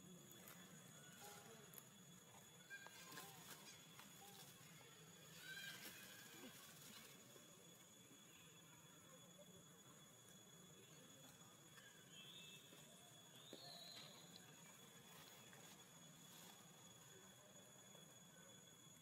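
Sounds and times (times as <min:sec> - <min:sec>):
faint short high calls: 0:11.8 - 0:14.3.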